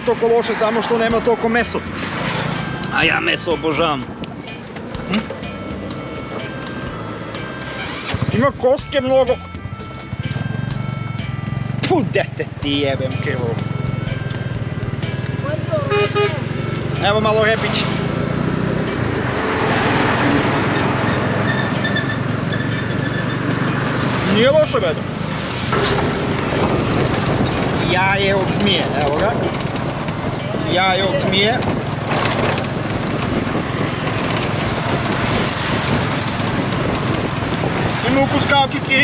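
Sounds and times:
road and wind noise: 0:00.0 - 0:39.0
tuk-tuk engine running: 0:00.0 - 0:39.0
music with steady beat: 0:08.4 - 0:15.5.

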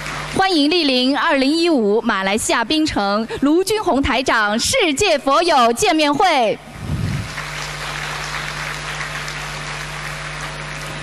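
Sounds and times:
low hum: 0:06.6 - 0:08.4
audience applauding: 0:06.9 - 0:11.0.

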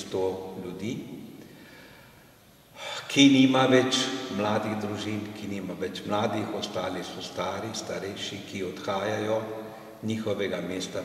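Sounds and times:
man speaking: 0:00.0 - 0:01.3, 0:02.8 - 0:11.0
man breathing in: 0:01.4 - 0:03.1.

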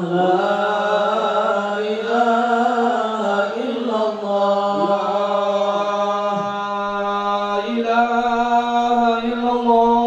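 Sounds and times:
men chanting into microphones: 0:00.0 - 0:10.0.

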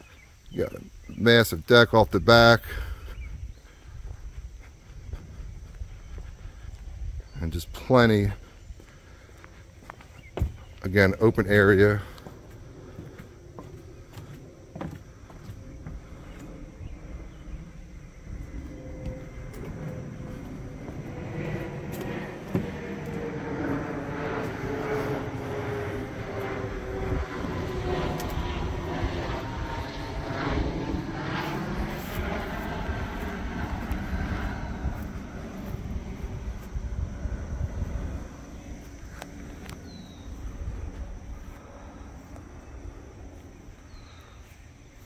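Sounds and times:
airplane engine drone: 0:00.0 - 0:45.0.

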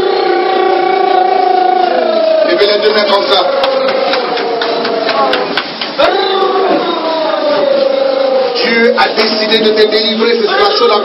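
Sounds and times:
voice holding long wordless tones: 0:00.0 - 0:05.4, 0:06.0 - 0:11.0.

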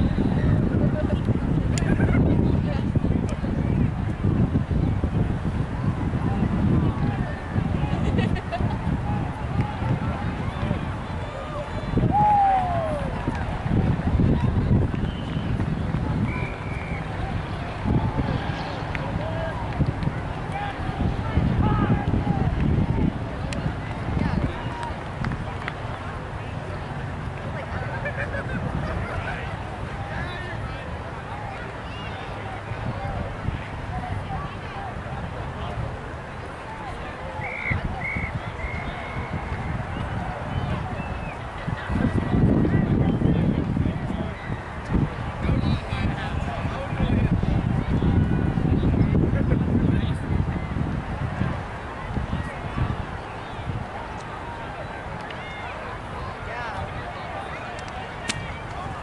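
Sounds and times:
faint distant voices: 0:00.0 - 0:59.0
low outdoor rumble: 0:00.0 - 0:59.0
people talking: 0:00.0 - 0:59.0
wind buffeting microphone: 0:00.0 - 0:59.0.

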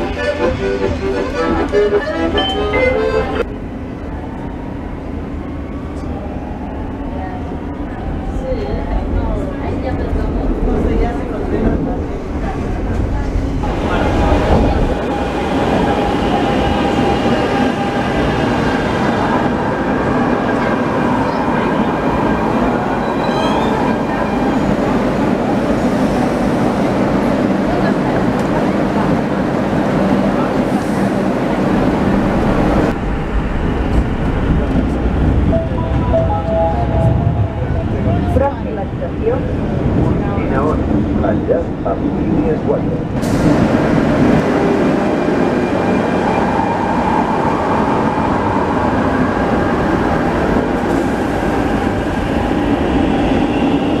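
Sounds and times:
passengers' voices: 0:00.0 - 0:54.0
train wheels rumbling on rails: 0:00.0 - 0:54.0.

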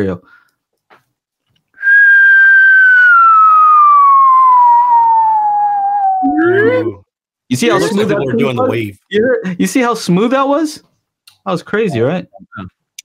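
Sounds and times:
person whistling descending note: 0:01.8 - 0:06.9.

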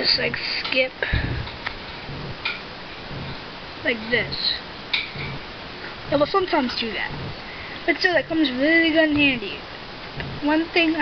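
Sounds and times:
low thump: 0:01.0 - 0:03.5.

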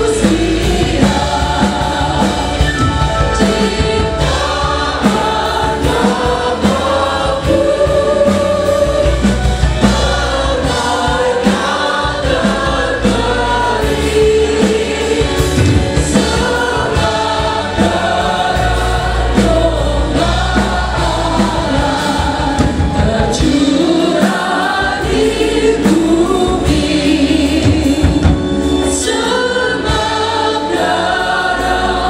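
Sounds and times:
group singing a hymn: 0:00.0 - 0:32.0
live band playing: 0:00.0 - 0:32.0.

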